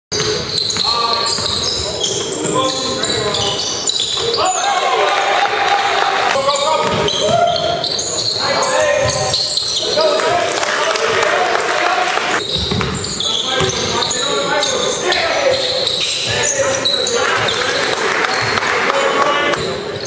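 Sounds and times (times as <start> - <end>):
sneaker squeaks: 0.1 - 4.9, 6.4 - 10.3, 12.4 - 20.0
voices and shouts echoing: 0.2 - 20.0
basketball bouncing on hardwood: 6.8 - 7.4, 12.6 - 13.0.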